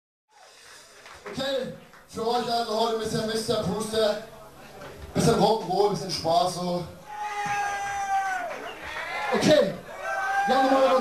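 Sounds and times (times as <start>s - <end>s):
man calling into a microphone: 1.3s - 4.6s, 9.3s - 11.0s.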